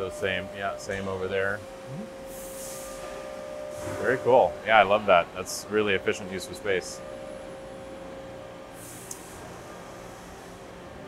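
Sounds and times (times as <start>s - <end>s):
machine shop background noise: 0.0s - 11.0s.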